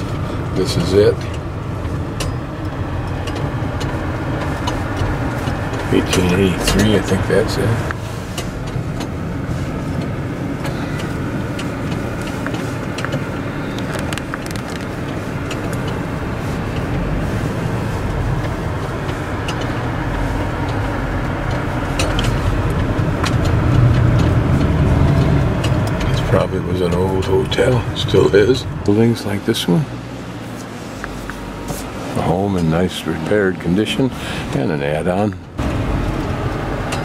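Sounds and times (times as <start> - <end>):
car engine and tyre rumble: 0.0 - 37.0.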